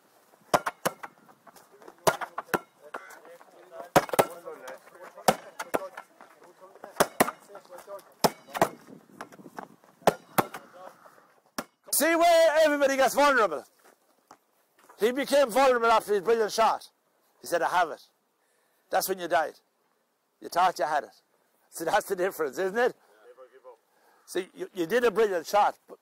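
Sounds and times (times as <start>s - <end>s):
ball bouncing on tarmac: 0.5s - 10.7s.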